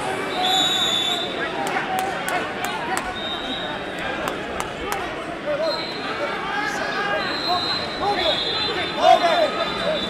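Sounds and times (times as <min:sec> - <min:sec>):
voices in echoing hall: 0:00.0 - 0:10.0.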